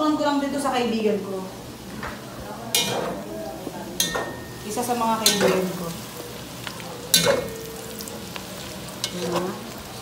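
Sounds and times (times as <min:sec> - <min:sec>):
hotdogs sizzling in a pot: 0:00.6 - 0:10.0
metal spoon clanking against pot: 0:02.7 - 0:03.2, 0:04.0 - 0:05.8, 0:07.1 - 0:08.2, 0:09.0 - 0:09.5.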